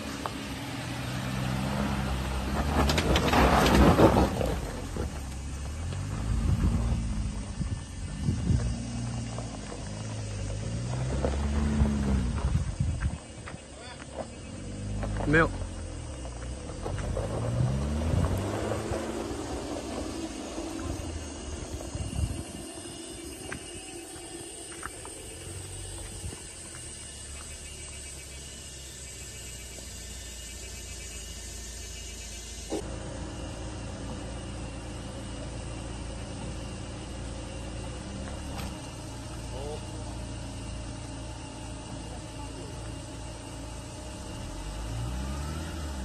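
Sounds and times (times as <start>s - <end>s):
suv engine revving: 0.0s - 46.0s.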